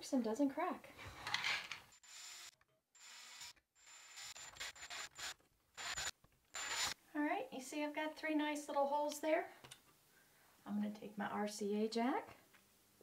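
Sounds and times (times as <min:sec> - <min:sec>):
cordless drill motor whine: 0:02.0 - 0:07.0
drill bit rasping through plastic: 0:02.0 - 0:07.0.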